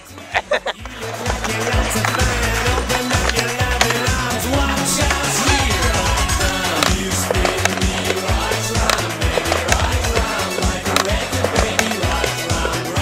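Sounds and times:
music with heavy bass line: 0.0s - 13.0s
skateboard wheels rolling on concrete: 0.0s - 13.0s
skateboard clacks and slaps: 0.8s - 13.0s.

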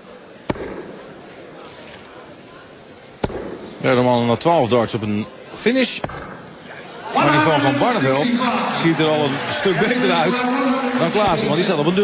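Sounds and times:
low hall murmur: 0.0s - 12.0s.

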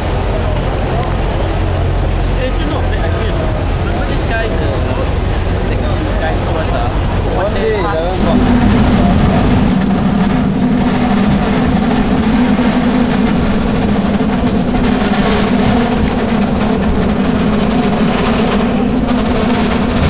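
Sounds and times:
cable car running on rails: 0.0s - 20.0s.

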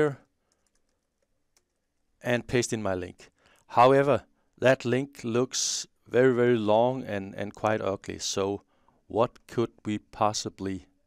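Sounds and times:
faint keyboard keystrokes: 0.5s - 2.0s.

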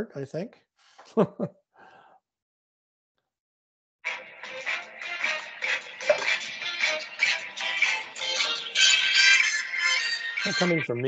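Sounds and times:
phone ringtone melody: 7.5s - 10.8s.

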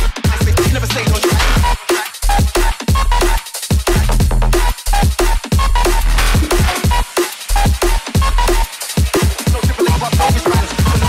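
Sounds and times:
drum and bass music: 0.0s - 11.0s.

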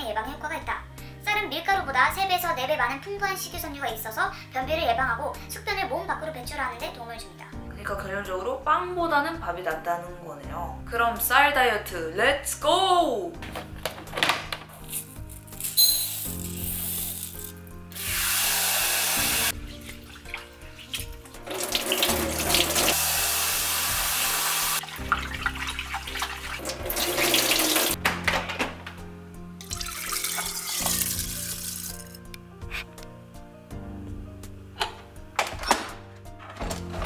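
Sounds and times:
soft background music: 0.0s - 37.0s
rice rinsed by hand: 18.0s - 28.0s, 29.6s - 32.1s
tap water running into bowl: 18.1s - 28.0s, 29.6s - 32.0s.

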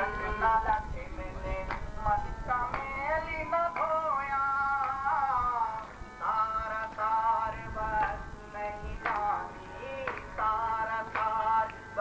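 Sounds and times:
devotional singing with held notes: 0.0s - 12.0s.

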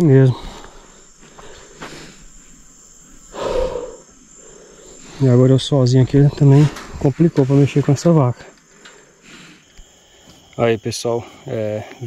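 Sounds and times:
insects humming: 0.0s - 12.0s.

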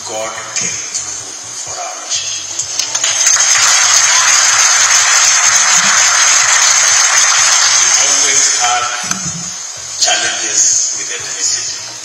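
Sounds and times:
background music: 0.0s - 12.0s
congregation applauding: 2.8s - 9.2s.

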